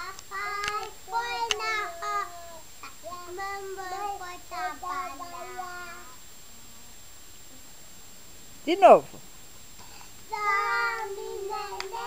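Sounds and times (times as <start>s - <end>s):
child singing: 0.0s - 6.2s, 10.3s - 12.0s.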